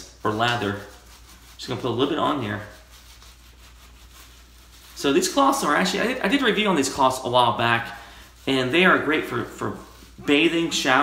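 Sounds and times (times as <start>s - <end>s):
soap rubbing on wash cloth: 0.0s - 11.0s.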